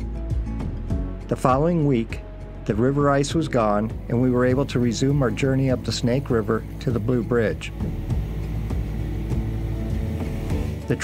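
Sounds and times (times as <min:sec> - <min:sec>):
outboard motor rumbling: 0:02.4 - 0:11.0.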